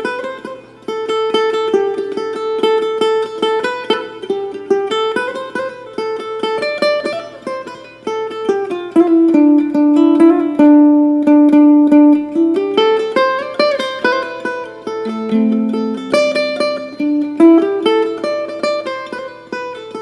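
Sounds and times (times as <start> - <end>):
ukulele fingerpicking: 0.0 - 20.0.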